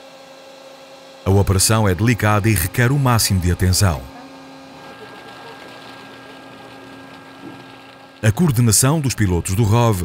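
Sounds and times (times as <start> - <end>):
machinery hum: 1.0 - 10.0.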